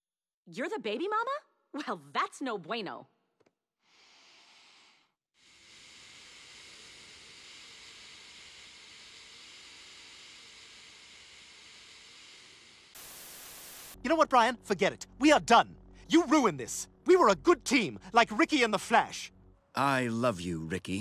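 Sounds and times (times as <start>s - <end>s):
nasal exhale hiss: 3.8s - 14.0s.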